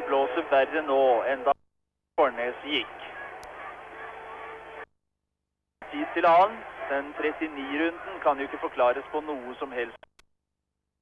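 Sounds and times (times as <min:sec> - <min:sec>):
faint distant voices: 0:02.4 - 0:04.8
click: 0:10.0 - 0:10.3.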